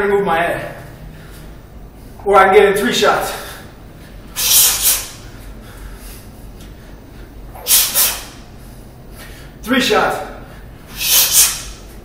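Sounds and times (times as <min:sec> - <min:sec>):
sharp hissing exhalations: 0:04.3 - 0:05.2, 0:07.6 - 0:08.4, 0:10.9 - 0:11.8.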